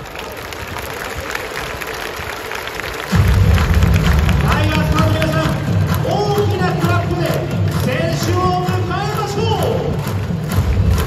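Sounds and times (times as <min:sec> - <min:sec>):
crowd chatter: 0:00.0 - 0:11.0
loud music with heavy bass: 0:03.1 - 0:11.0.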